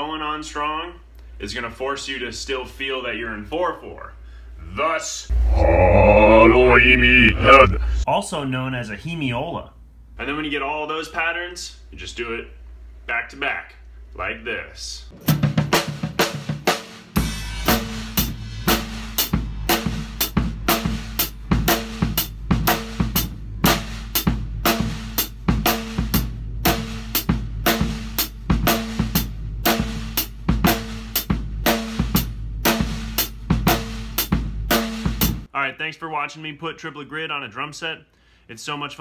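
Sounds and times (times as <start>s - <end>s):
drum kit rock groove: 15.1s - 35.5s.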